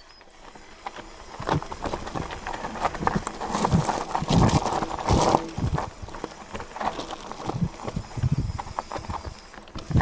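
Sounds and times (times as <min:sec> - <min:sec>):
tyres crunching over stones: 0:00.0 - 0:10.0
bike clattering and rattling: 0:00.2 - 0:10.0.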